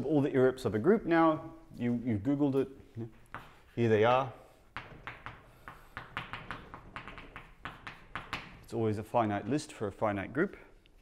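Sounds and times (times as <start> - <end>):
chalk tapping on blackboard: 3.2 - 4.0, 4.7 - 8.7.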